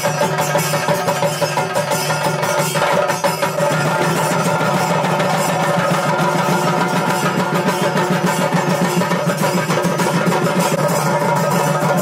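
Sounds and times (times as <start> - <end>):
drums in fast roll: 0.0 - 12.0.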